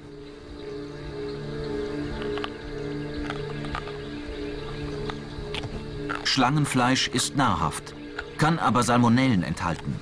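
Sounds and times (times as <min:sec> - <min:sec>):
low sustained background music: 0:00.0 - 0:10.0.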